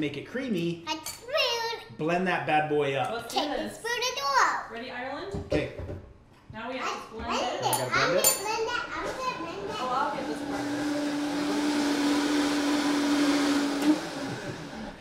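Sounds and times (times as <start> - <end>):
blender motor whirring: 9.0 - 15.0.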